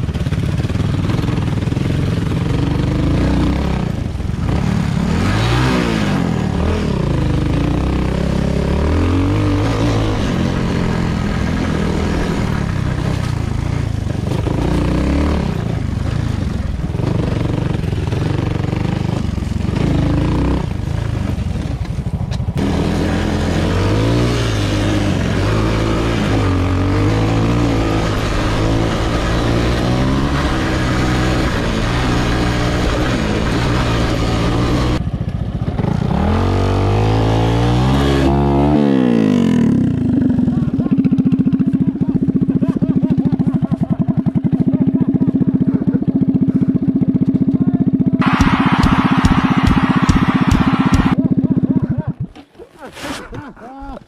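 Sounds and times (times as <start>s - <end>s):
motorcycle engine revving: 0.0s - 52.4s.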